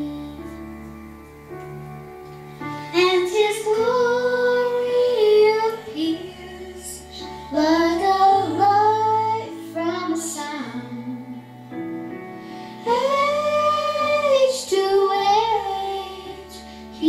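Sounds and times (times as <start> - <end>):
girl singing into microphone: 0.0 - 1.0, 2.7 - 11.5, 12.8 - 17.0.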